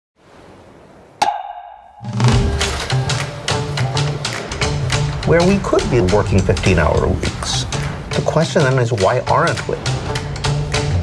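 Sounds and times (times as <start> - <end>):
sharp ringing percussive strike: 1.2 - 3.1.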